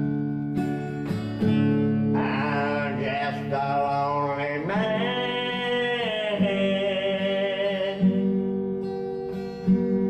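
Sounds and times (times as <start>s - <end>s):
acoustic guitar strumming: 0.0s - 10.0s
man singing: 2.0s - 8.4s.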